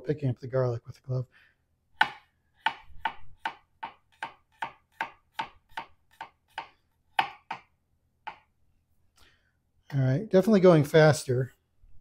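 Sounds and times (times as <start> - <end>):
knife chopping on cutting board: 2.0 - 7.7, 8.3 - 8.5.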